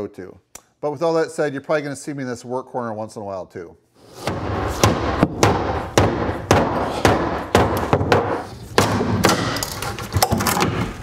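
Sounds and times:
hammer knocking on wood: 4.3s - 9.6s.

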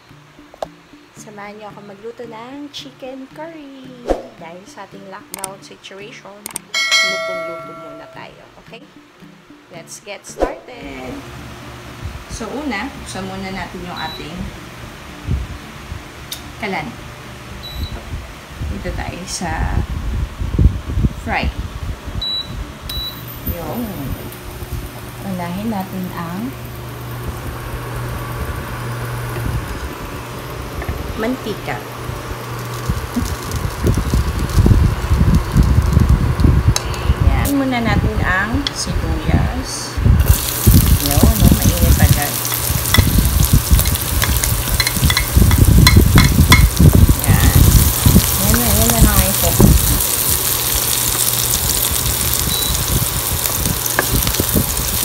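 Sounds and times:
fan humming: 0.0s - 55.0s
onions sizzling in oil: 23.2s - 37.9s, 40.2s - 55.0s.

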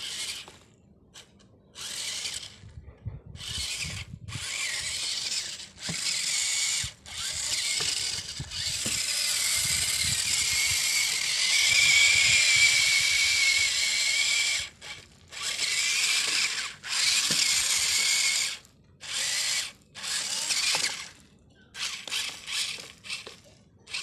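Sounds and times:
small electric motor whirring: 0.0s - 2.8s, 3.4s - 24.0s.

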